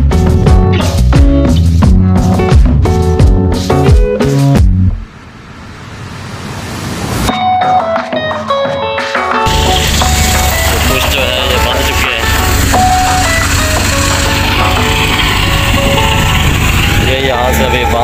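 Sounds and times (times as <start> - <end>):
background music: 0.0 - 5.0, 7.3 - 18.0
thresher machine droning: 9.5 - 18.0.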